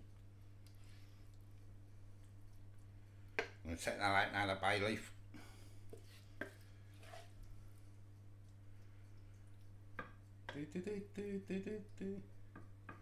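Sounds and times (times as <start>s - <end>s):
steady low hum: 0.0s - 13.0s
wooden spoon scraping and knocking: 5.9s - 7.4s.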